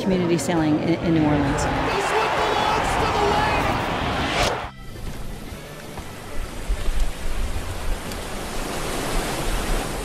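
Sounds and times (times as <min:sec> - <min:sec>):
rushing noise with low rumble: 0:01.6 - 0:04.8.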